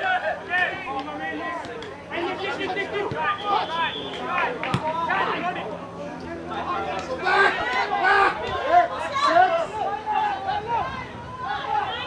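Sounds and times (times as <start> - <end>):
voices talking over one another: 0.0 - 12.0.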